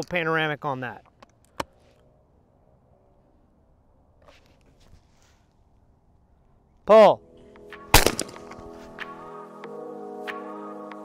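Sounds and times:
faint soft rustle: 4.2s - 5.9s.

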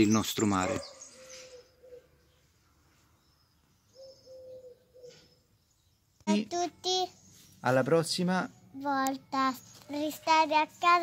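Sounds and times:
high thin bird calls: 0.0s - 2.5s, 3.3s - 5.6s
low bird calls: 0.0s - 6.2s.

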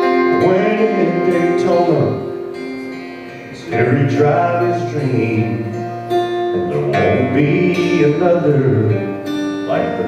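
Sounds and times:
man singing: 0.0s - 2.4s, 3.2s - 10.0s
acoustic guitar strumming: 0.0s - 10.0s.

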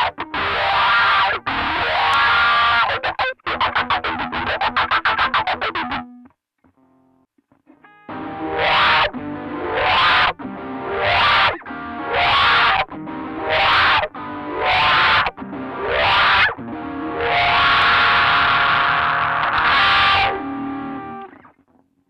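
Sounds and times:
electric guitar chords with wah: 0.0s - 6.1s, 7.9s - 21.6s.

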